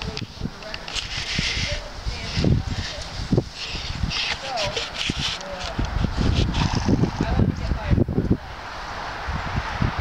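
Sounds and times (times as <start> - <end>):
distant talking: 0.0 - 6.1
outdoor background noise: 0.0 - 10.0
wind buffeting microphone: 0.0 - 10.0.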